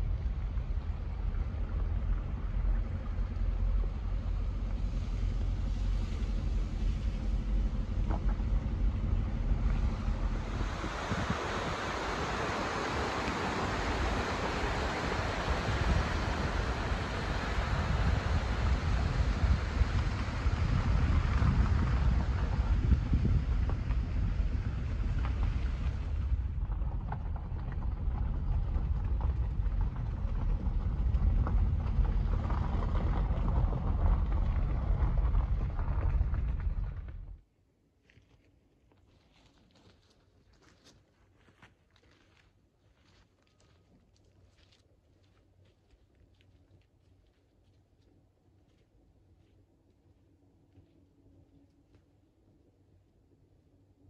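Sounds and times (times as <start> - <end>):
engine and tyre rumble: 0.0 - 37.4.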